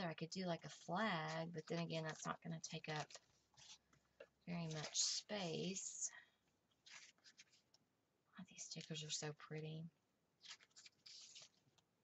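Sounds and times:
paper sheets rustling: 0:01.0 - 0:03.9, 0:04.6 - 0:05.8, 0:06.8 - 0:07.7, 0:10.4 - 0:11.7.

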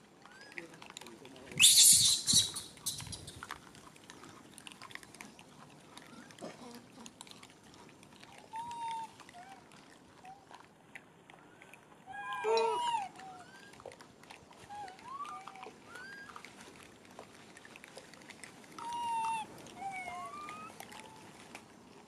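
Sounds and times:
monkeys cooing: 0:01.6 - 0:03.4, 0:12.1 - 0:13.8, 0:14.7 - 0:16.3, 0:18.8 - 0:21.2.

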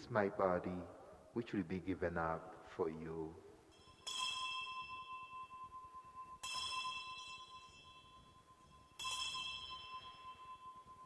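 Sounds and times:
altar bell ringing: 0:03.7 - 0:11.0.

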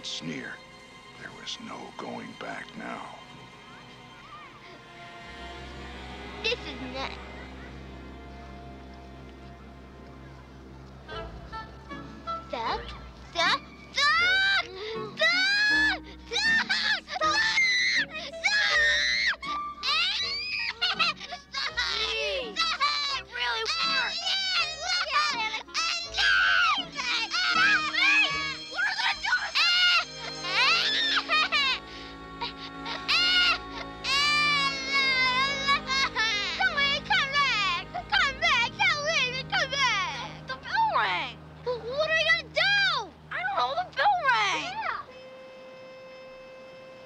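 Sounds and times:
boy wailing: 0:14.0 - 0:41.0
boy crying out: 0:24.9 - 0:37.6.

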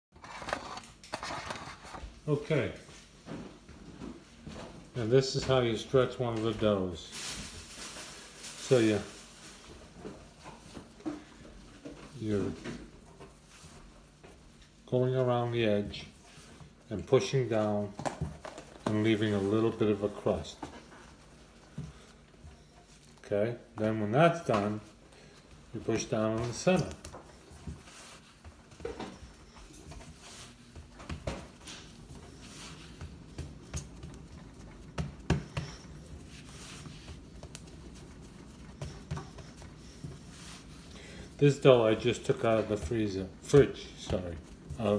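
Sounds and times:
fingertips patting dough: 0:17.5 - 0:44.9.

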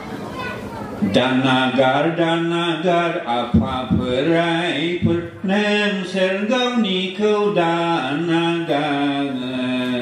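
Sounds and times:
man chanting into a microphone: 0:01.0 - 0:10.0.

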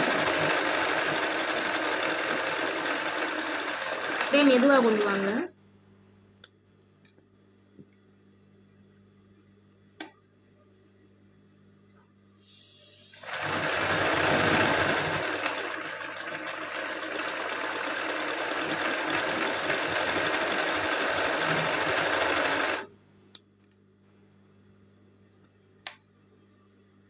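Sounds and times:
sewing machine stitching: 0:00.0 - 0:05.3, 0:13.2 - 0:22.9.

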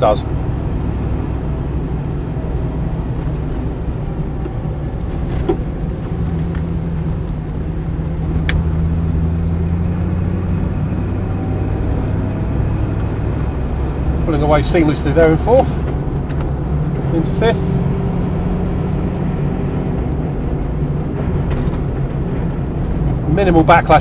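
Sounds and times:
car engine from inside cabin: 0:00.0 - 0:24.0
road noise: 0:00.0 - 0:24.0.

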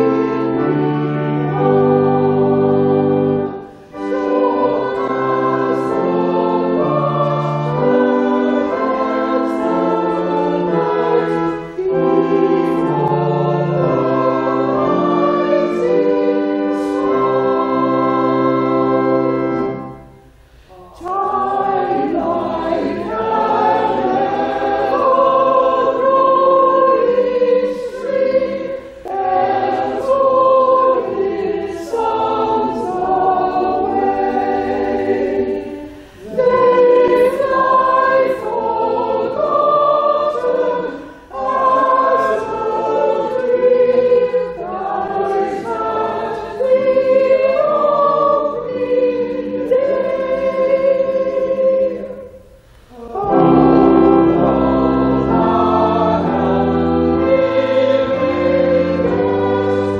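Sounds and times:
small choir singing: 0:00.0 - 0:59.9.

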